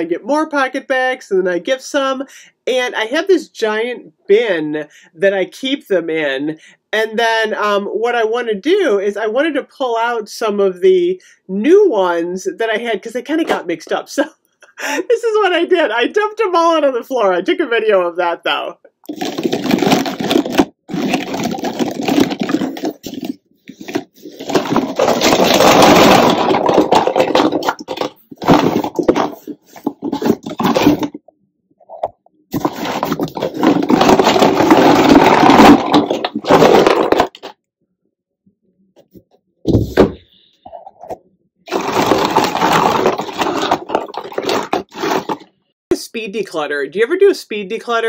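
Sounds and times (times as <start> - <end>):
plastic bottles clattering on wooden floor: 19.1 - 31.2, 31.9 - 37.5, 41.7 - 45.5.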